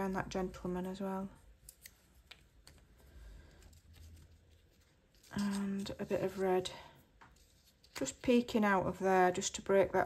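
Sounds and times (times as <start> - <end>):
paper rustling: 1.6 - 8.3.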